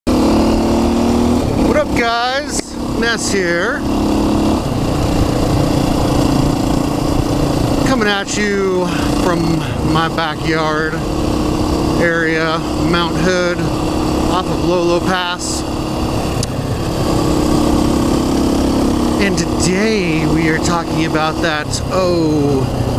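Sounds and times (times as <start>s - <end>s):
motorcycle engine running: 0.1s - 22.9s
wind noise on microphone: 4.0s - 7.9s.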